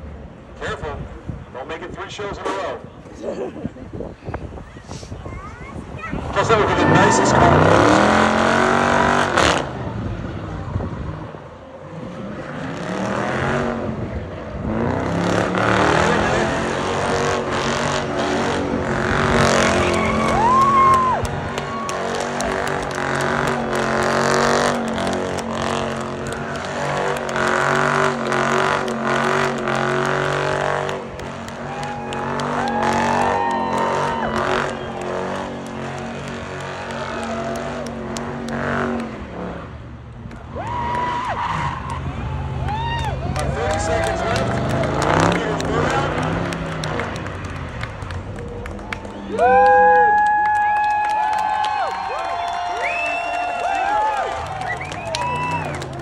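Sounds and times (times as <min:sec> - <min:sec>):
car engine at high revs: 0:06.3 - 0:42.5, 0:43.2 - 0:48.9.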